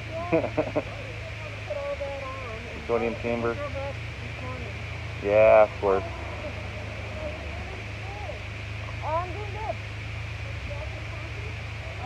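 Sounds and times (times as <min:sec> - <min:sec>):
car engine idling: 0:00.0 - 0:12.0
faint voices: 0:00.0 - 0:12.0.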